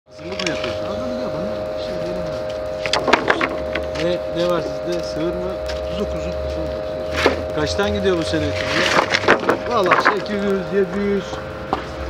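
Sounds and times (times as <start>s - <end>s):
person talking indistinctly: 0.1s - 11.4s
high-pitched hum: 0.1s - 12.0s.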